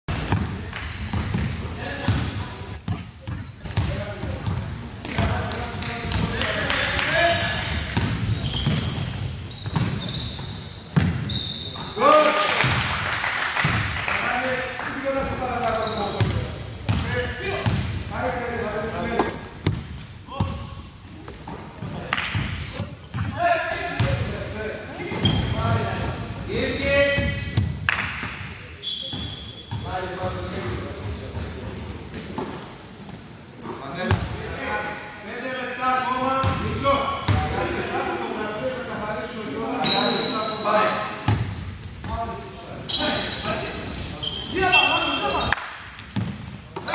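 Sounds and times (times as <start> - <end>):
shoe squeaks: 0.1 - 5.7, 6.3 - 12.0, 14.1 - 36.9, 39.7 - 45.6, 46.2 - 46.9
players' voices echoing: 0.1 - 46.9
basketball bouncing on wooden floor: 0.2 - 6.4, 7.6 - 11.3, 19.6 - 20.5.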